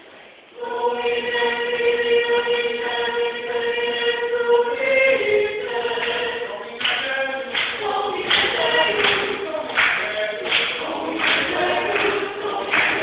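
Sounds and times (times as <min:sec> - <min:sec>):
choir singing a cappella: 0:00.5 - 0:13.0.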